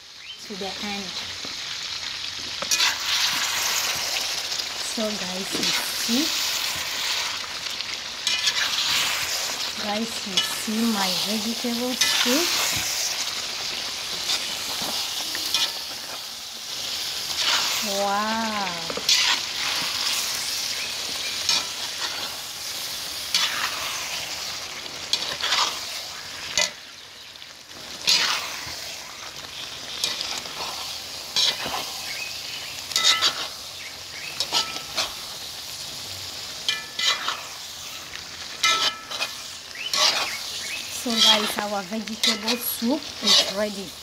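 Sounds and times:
soup sizzling in metal pot: 0:00.0 - 0:44.0
spatula scraping pot: 0:18.8 - 0:20.4, 0:25.1 - 0:25.8, 0:36.7 - 0:37.5, 0:38.6 - 0:40.4.

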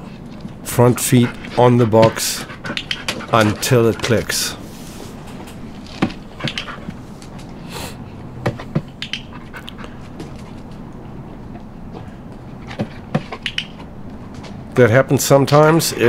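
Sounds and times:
faint low hum: 0:00.0 - 0:16.0
dog claws ticking on paving: 0:00.4 - 0:04.6, 0:06.0 - 0:07.4, 0:12.3 - 0:14.4.

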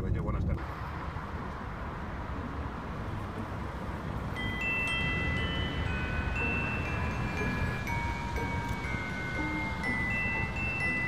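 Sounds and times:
low rumble of street traffic: 0:00.0 - 0:11.0
bell-like chime tones: 0:04.3 - 0:11.0.

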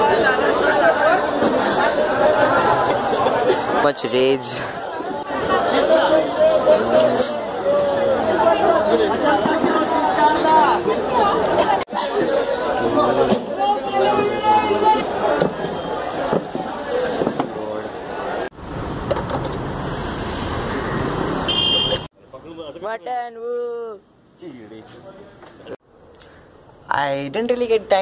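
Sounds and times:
vendors and shoppers chatter: 0:00.0 - 0:18.6, 0:20.7 - 0:28.0
traffic noise: 0:00.0 - 0:28.0.

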